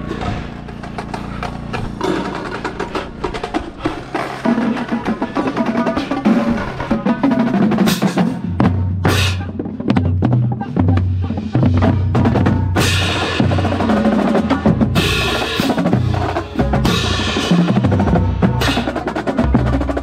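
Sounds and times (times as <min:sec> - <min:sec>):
bass drums: 0:00.0 - 0:20.0
snare and tenor drums: 0:02.0 - 0:20.0
cymbal crashes: 0:12.7 - 0:19.0.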